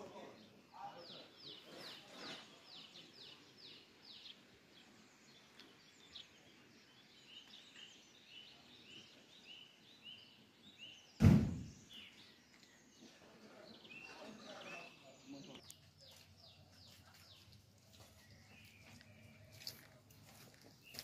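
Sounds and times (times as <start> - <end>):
songbirds singing: 0.0 - 21.0
loud low thump: 11.2 - 11.8.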